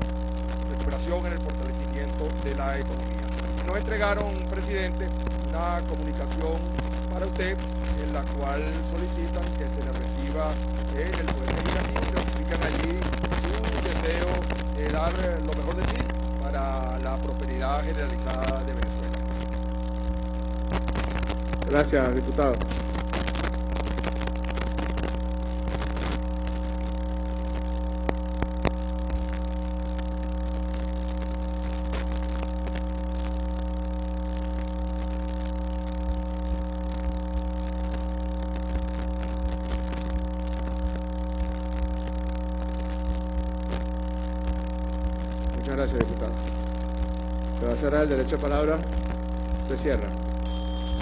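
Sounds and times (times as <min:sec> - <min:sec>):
electrical mains hum: 0:00.0 - 0:51.0.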